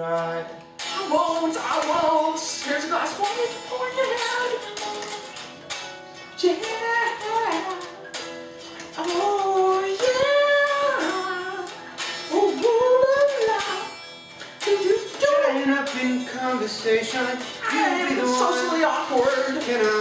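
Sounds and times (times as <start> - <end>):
electric guitars playing: 0.0 - 20.0
man singing high sliding notes: 9.0 - 14.0, 14.6 - 20.0.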